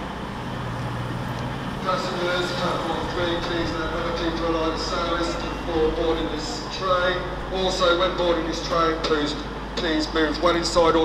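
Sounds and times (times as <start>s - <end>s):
standing train hum and rumble: 0.0s - 11.0s
station public-address announcement: 0.1s - 11.0s.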